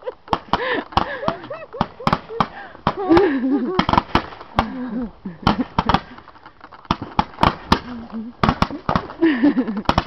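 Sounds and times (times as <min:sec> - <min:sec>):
fireworks popping and cracking: 0:00.0 - 0:10.0.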